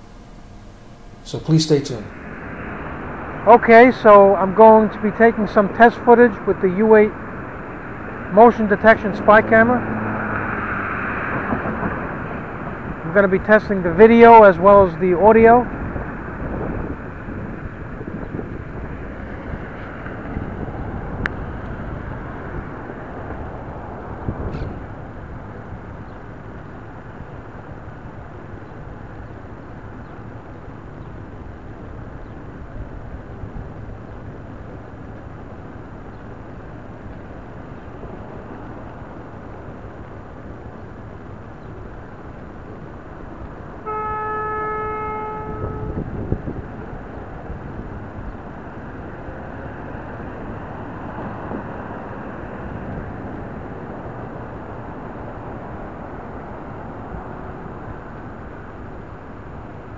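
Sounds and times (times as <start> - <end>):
passing traffic rush: 0.0 - 59.9
vehicle horn: 43.8 - 46.2.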